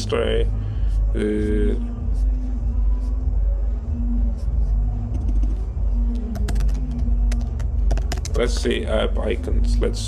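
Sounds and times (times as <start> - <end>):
steady low rumble and hum: 0.0 - 10.0
keyboard keys clicking: 6.3 - 8.4.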